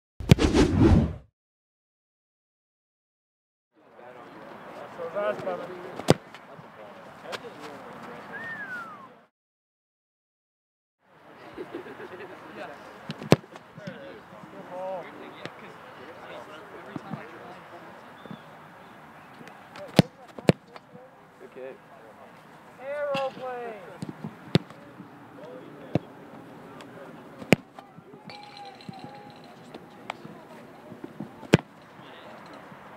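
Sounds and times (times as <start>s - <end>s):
whoosh: 0.2s - 1.3s
football kick thumps: 13.1s - 14.0s, 24.0s - 24.8s, 27.4s - 27.8s, 31.2s - 31.7s
football kick whack: 27.4s - 27.7s.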